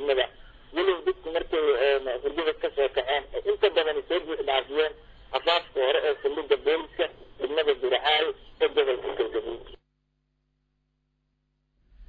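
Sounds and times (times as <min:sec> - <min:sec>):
person speaking over radio: 0:00.0 - 0:09.8.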